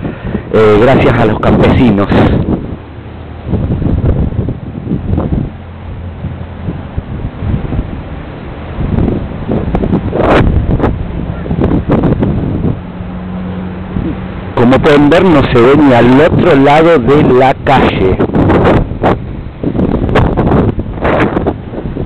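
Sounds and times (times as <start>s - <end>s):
storm wind buffeting microphone: 0.0s - 22.0s.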